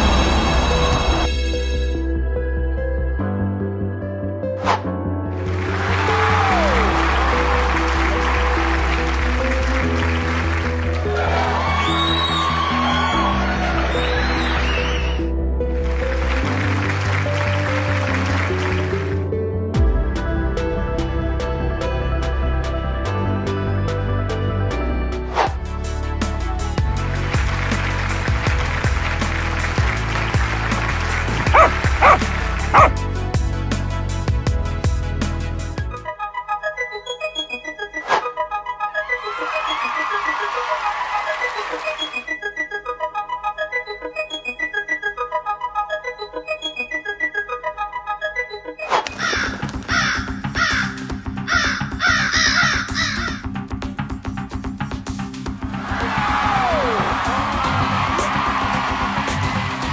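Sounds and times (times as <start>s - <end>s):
music backing: 0.6s - 59.9s
dog barking: 31.5s - 32.9s
crow cawing: 49.2s - 53.5s.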